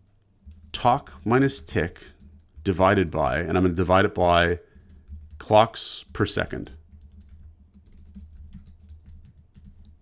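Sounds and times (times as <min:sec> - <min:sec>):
computer keyboard typing: 0:00.0 - 0:02.8, 0:04.7 - 0:05.5, 0:06.1 - 0:10.0.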